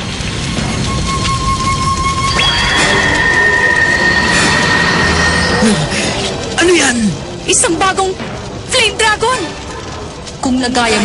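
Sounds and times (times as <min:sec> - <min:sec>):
high whine: 0:00.0 - 0:07.4
rushing flames: 0:00.0 - 0:11.0.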